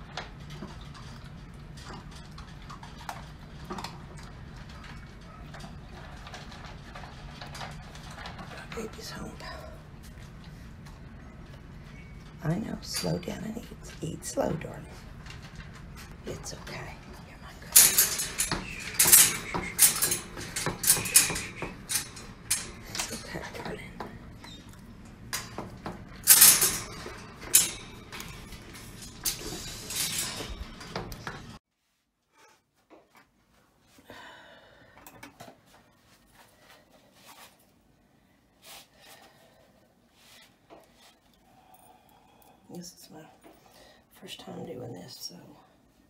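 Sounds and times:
dog eating kibble: 0.0 - 12.2
bowl and metal crate rattling: 0.0 - 31.6.

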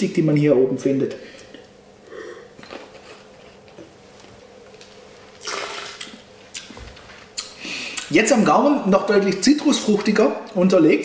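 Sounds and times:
hissing slurp of wine: 5.4 - 6.0
mouth clicks: 7.4 - 8.1.

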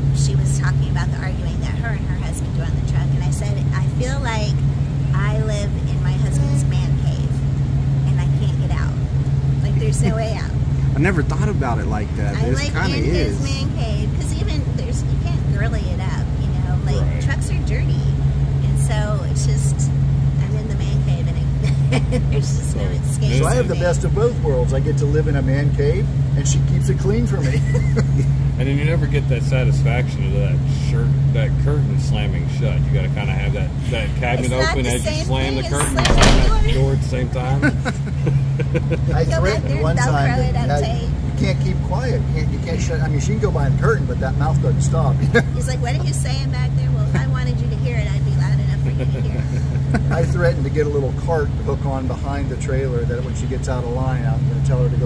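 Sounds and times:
people talking: 0.0 - 7.4, 8.1 - 9.0, 9.6 - 55.0
low mechanical hum: 0.0 - 55.0
vehicle engine idling: 0.0 - 55.0
quiet voices: 9.6 - 55.0
people laughing: 9.8 - 10.4, 21.6 - 22.7, 27.2 - 30.1, 32.6 - 36.0, 36.8 - 40.8, 45.1 - 46.2, 48.8 - 50.7.

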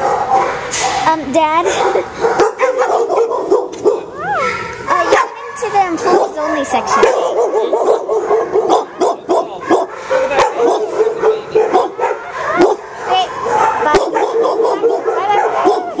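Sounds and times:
dogs barking and yipping: 0.0 - 16.0.

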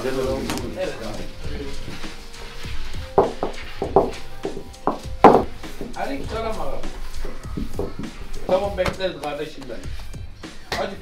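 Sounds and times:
rolling pin knocking on counter: 4.9 - 5.5.

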